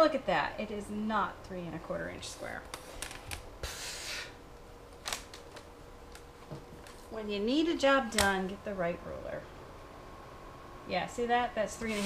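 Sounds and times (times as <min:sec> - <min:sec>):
ruler sliding across mat: 0:11.8 - 0:12.0.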